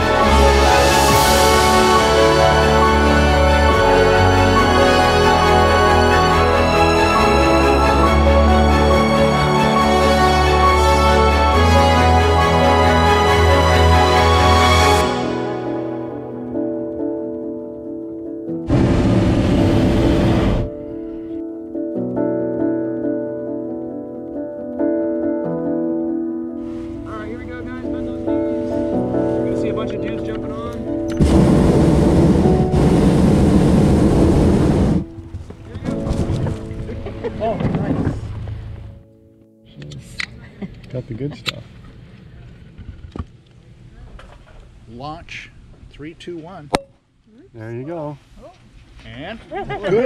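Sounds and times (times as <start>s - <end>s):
background music: 0.0s - 41.2s
propane burner blast: 18.7s - 20.7s, 31.1s - 35.1s.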